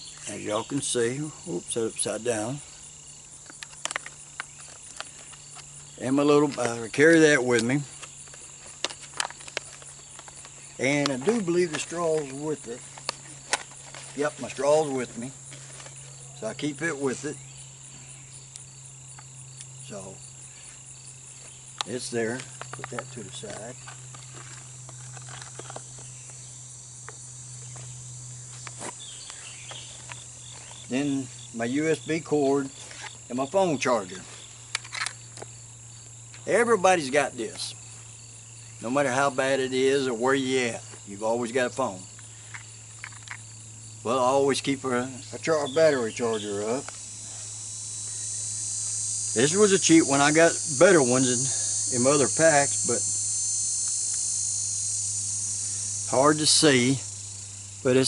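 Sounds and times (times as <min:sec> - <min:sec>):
crickets droning: 0:00.0 - 0:58.0
insects chirping: 0:00.0 - 0:58.0
plastic clicks and crinkles: 0:07.6 - 0:14.1.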